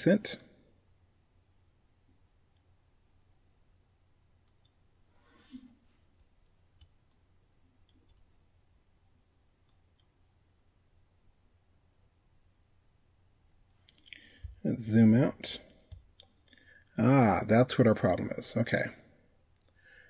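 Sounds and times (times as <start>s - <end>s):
computer mouse clicks: 4.4s - 4.8s, 6.1s - 7.2s, 7.8s - 8.3s.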